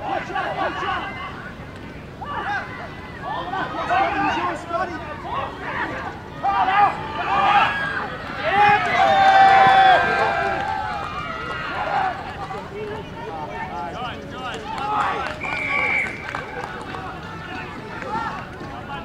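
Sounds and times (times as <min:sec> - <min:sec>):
voices shouting: 0:00.0 - 0:19.0.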